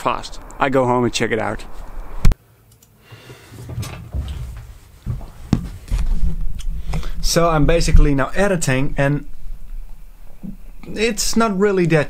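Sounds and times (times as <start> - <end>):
low rumble: 0.0 - 2.4, 3.7 - 11.0
rustling: 3.1 - 7.2.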